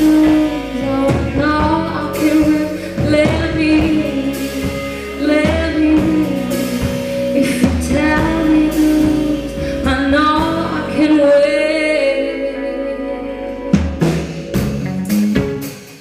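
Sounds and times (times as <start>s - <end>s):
woman singing: 0.0s - 14.2s
live soul-rock band: 0.0s - 16.0s.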